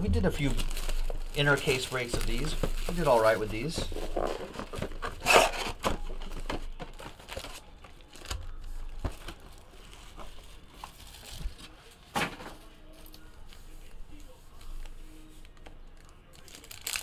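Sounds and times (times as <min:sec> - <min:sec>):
foil packs rustling: 0:00.0 - 0:17.0.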